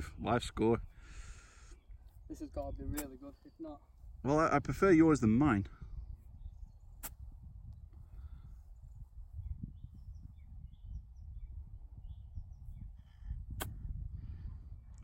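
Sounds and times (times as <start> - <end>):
wind rumble on microphone: 0.0 - 15.0.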